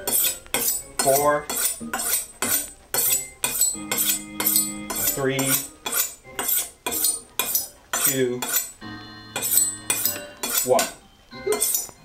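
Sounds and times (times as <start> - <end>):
knife scraping sharpening steel: 0.0 - 8.8, 9.4 - 12.0.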